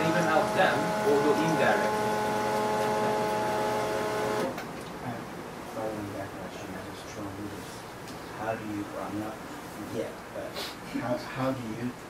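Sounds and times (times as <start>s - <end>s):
steady multi-pitch hum: 0.0s - 4.5s.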